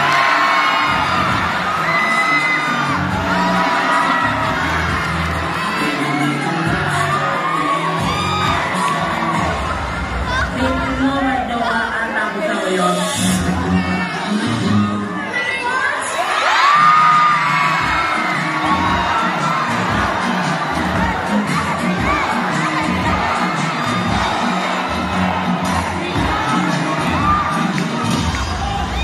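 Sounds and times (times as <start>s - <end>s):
crowd cheering and screaming: 0.0s - 11.0s, 12.4s - 29.0s
dance music with low beat: 17.1s - 29.0s.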